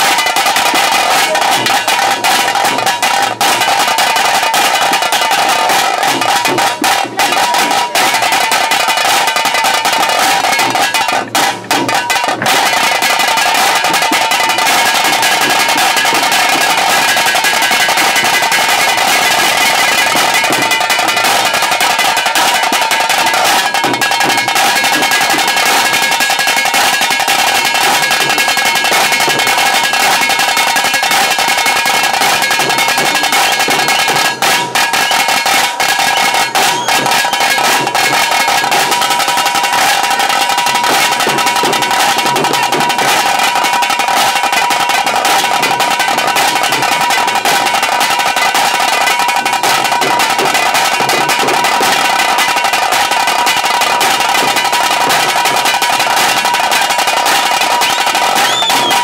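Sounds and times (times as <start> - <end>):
drum band playing fast beat: 0.0 - 59.0.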